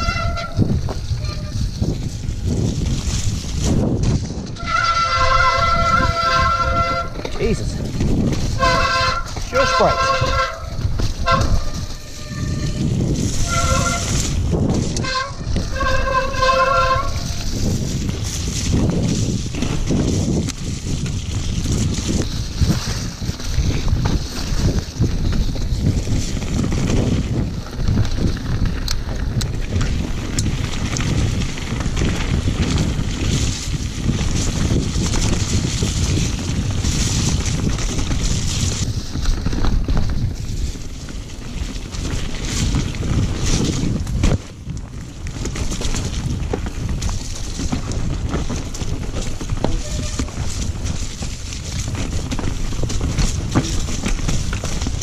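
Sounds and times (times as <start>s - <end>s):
tyres on muddy trail: 0.0s - 55.0s
wind on microphone: 0.0s - 55.0s
bike disc brakes squealing: 8.4s - 14.4s, 15.0s - 17.8s, 49.6s - 50.7s.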